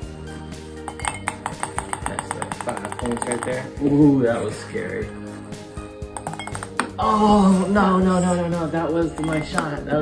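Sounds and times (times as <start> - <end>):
ping-pong ball bouncing in glass: 0.9 - 3.8, 6.0 - 7.0, 9.0 - 9.8.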